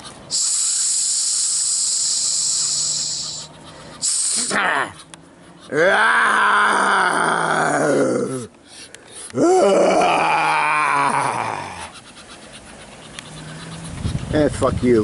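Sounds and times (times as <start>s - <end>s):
man groaning: 5.7s - 8.5s, 9.3s - 11.9s.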